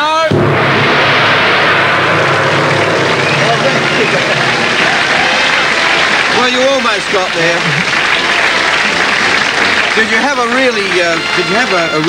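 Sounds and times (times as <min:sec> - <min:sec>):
gong ringing: 0:00.3 - 0:07.2
audience applause: 0:02.0 - 0:12.0.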